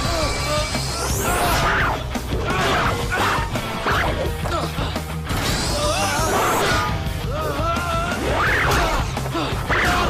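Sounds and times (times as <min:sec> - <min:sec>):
action background music: 0:00.0 - 0:10.0.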